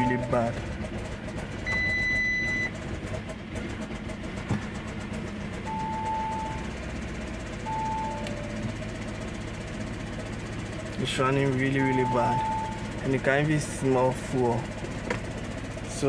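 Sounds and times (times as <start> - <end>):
dashboard warning chimes: 0.0 - 0.6, 1.7 - 2.7, 5.7 - 6.8, 7.6 - 8.8, 11.4 - 13.3
car engine idling roughly: 0.0 - 16.0.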